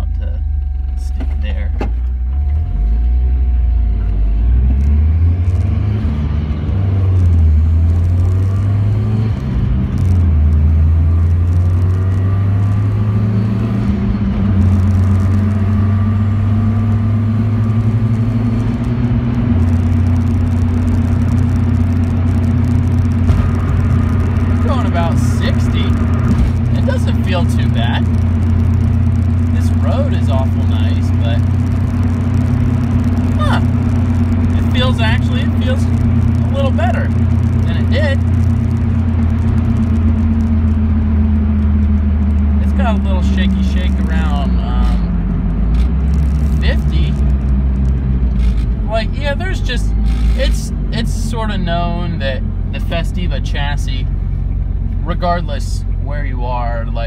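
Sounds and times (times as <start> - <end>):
car engine: 0.0 - 57.0
road noise inside car: 0.0 - 57.0.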